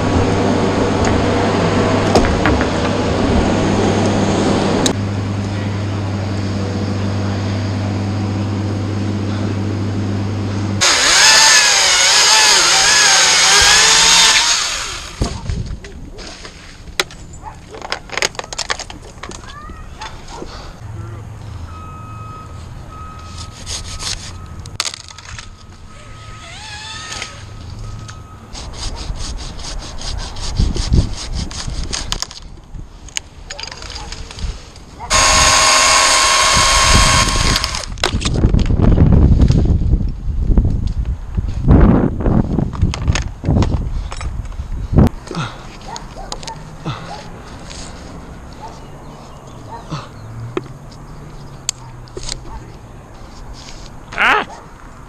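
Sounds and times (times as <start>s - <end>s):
chainsaw running: 7.7s - 15.4s, 25.9s - 27.5s, 35.1s - 38.1s.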